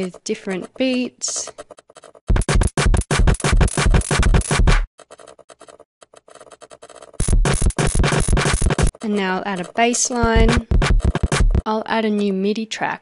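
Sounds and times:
drum machine beat: 2.3s - 4.9s, 7.2s - 11.7s.

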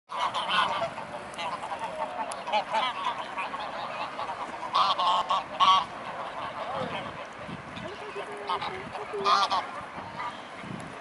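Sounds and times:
geese honking: 0.1s - 10.5s.

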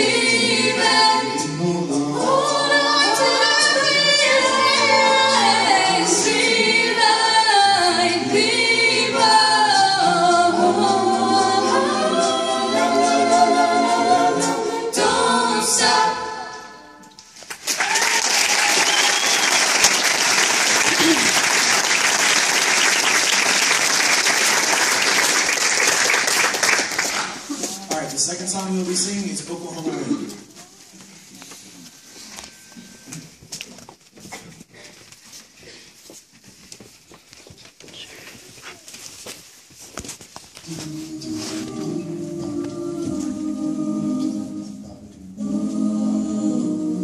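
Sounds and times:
a cappella choir singing: 0.0s - 17.1s, 40.6s - 47.0s
audience applauding: 17.4s - 27.5s.

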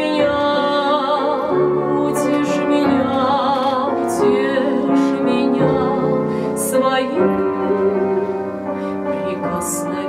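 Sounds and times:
upright piano: 0.0s - 10.0s
woman singing with vibrato: 0.0s - 10.0s.

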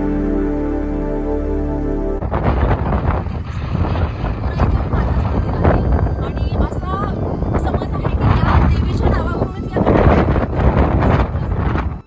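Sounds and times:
strong wind gusting on microphone: 2.2s - 12.0s.

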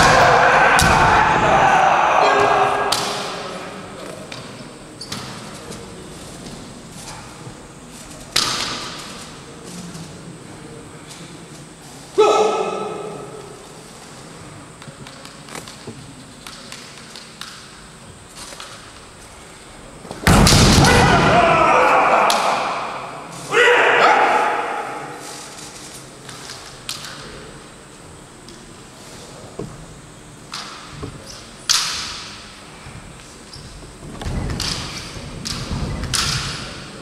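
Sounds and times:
fighters shouting in a hall: 0.0s - 4.0s, 12.1s - 13.7s, 20.5s - 25.8s.

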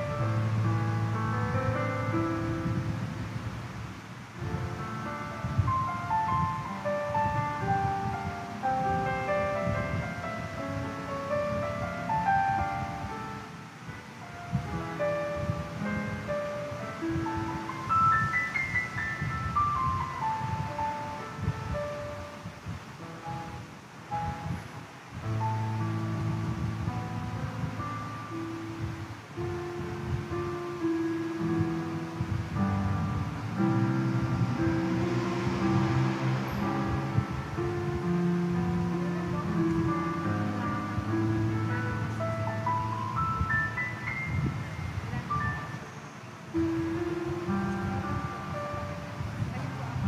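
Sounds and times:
slow keyboard music: 0.0s - 50.0s.

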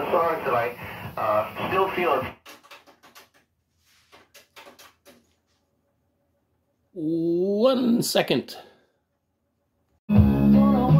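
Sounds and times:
faint handling clicks and knocks: 2.4s - 5.5s.

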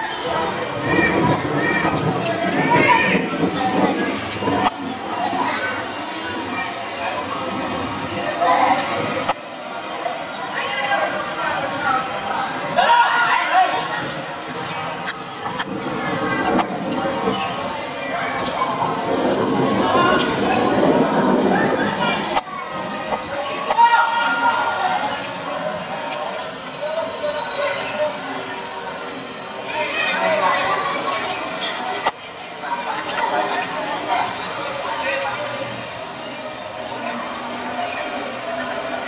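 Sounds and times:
people calling out and chattering: 0.0s - 39.0s
steady background noise: 0.0s - 39.0s.

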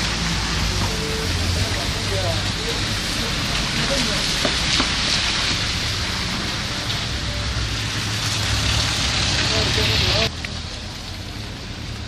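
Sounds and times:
continuous street hiss: 0.0s - 12.0s.

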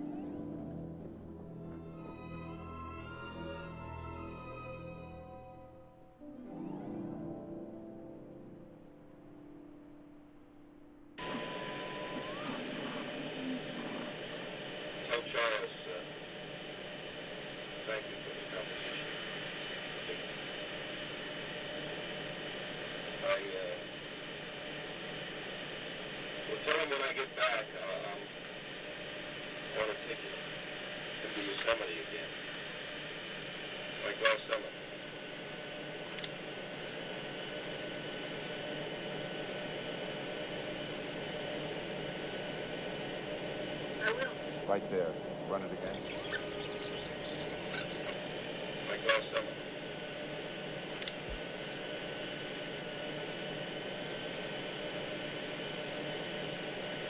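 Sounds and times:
faint hum: 0.0s - 57.0s
radio static: 11.2s - 38.8s, 40.5s - 57.0s.

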